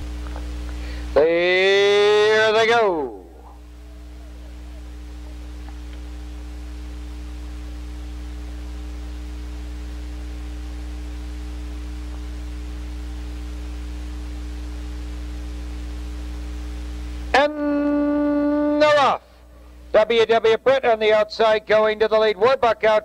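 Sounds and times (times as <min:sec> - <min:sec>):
low electrical hum: 0:00.0 - 0:23.0.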